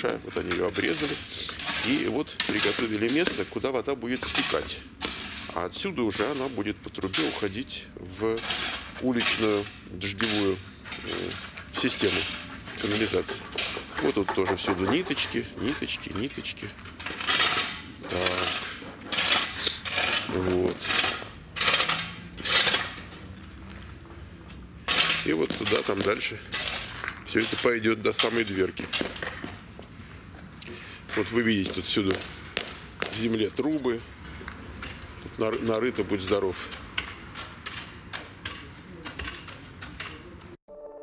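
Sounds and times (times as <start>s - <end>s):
shovel scraping gravel: 0.0s - 3.6s, 4.2s - 23.6s, 24.8s - 29.7s, 34.7s - 40.4s
sharp clicks and knocks: 10.2s - 16.4s.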